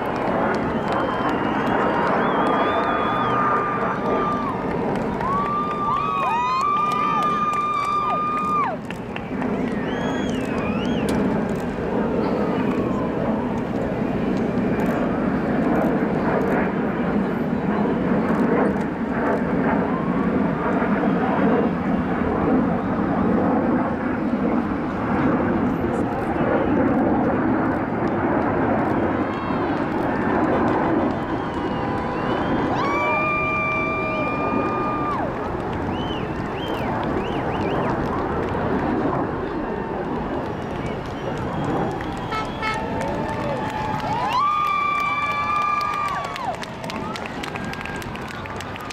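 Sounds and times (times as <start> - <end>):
crowd chatter and calls: 0.0 - 48.9
jet engines rumbling overhead: 0.0 - 48.9.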